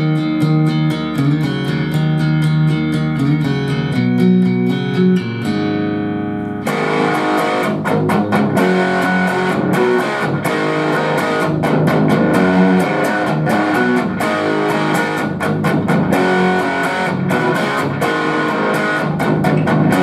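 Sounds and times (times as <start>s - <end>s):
electric guitar chords and riffs: 0.0s - 20.0s.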